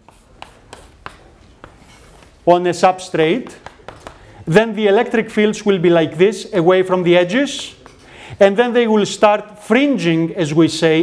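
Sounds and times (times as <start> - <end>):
chalk scraping on blackboard: 0.0 - 2.4
chalk tapping on board: 0.0 - 2.4, 3.3 - 4.3.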